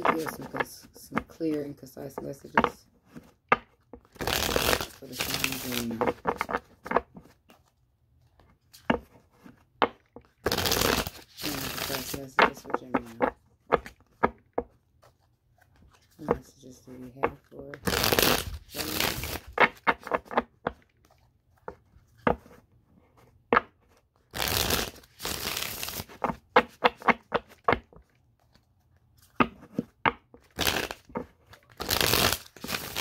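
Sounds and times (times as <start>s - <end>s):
cards tapping: 0.0s - 7.7s, 8.7s - 14.8s, 16.2s - 22.6s, 23.5s - 28.6s, 29.2s - 33.0s
cards being shuffled: 0.0s - 33.0s.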